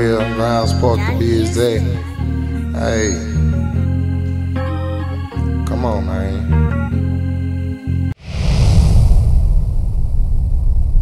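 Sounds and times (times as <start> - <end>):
organ music: 0.0 - 8.2
deep rumbling sound effect: 8.2 - 11.0.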